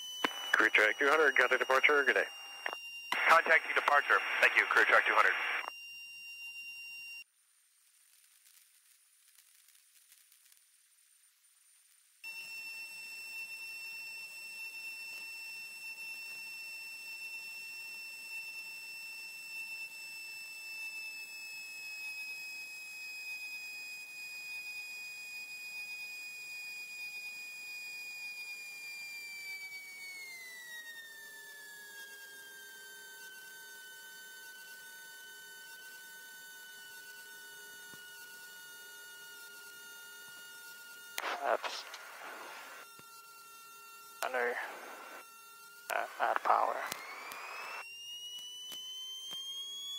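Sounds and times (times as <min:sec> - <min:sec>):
high-pitched engine whine: 0:00.0 - 0:05.7, 0:28.4 - 0:49.9.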